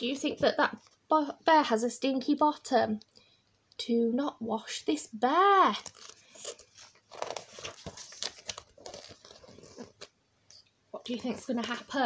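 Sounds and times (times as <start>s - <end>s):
book page turning: 5.7s - 10.2s.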